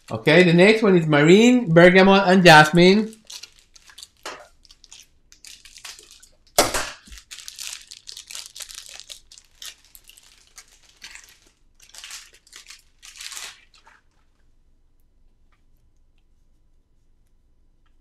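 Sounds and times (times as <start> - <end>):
plastic wrapping crinkling and tearing: 2.5 - 14.5.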